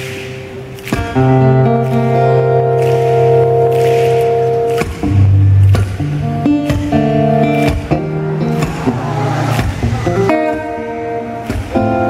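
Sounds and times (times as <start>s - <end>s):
amplified acoustic guitar: 0.0s - 12.0s.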